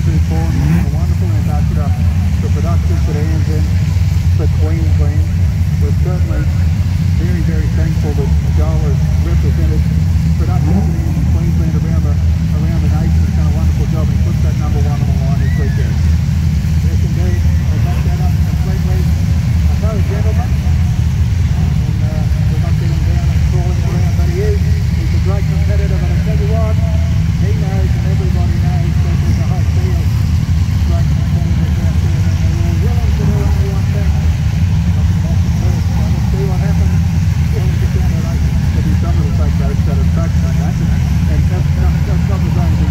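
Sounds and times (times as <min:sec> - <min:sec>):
indistinct voices: 0:00.0 - 0:42.9
race car engines at low revs: 0:00.0 - 0:42.9.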